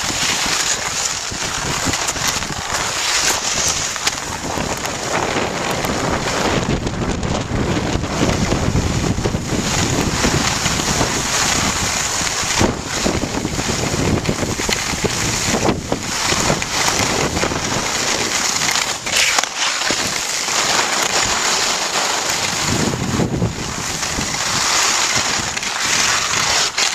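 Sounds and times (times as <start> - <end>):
skis scraping on packed snow: 0.0 - 26.9
wind rushing over microphone: 0.0 - 26.9.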